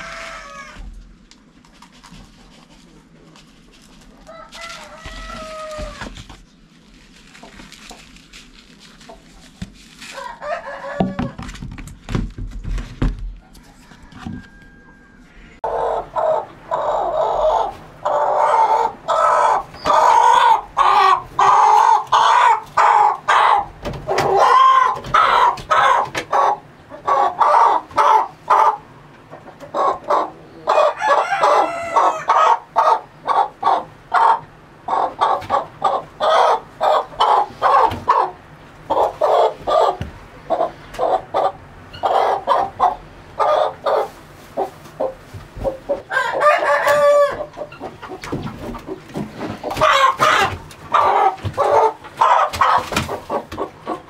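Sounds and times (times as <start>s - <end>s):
chicken calling loudly: 0.0s - 0.9s, 4.2s - 6.1s, 13.8s - 28.9s, 29.7s - 45.1s, 45.9s - 47.8s, 49.6s - 54.0s.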